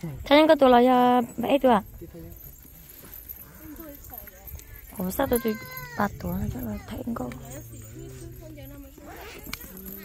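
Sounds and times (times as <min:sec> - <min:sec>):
faint background voices talking: 0:00.0 - 0:10.0.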